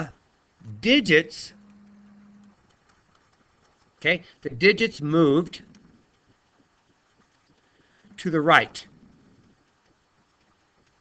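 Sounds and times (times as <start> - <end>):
faint steady low hum: 0.0 - 11.0.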